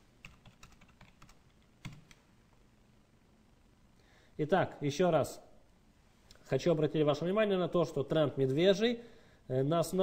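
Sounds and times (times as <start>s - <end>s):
keyboard typing: 0.2s - 2.2s.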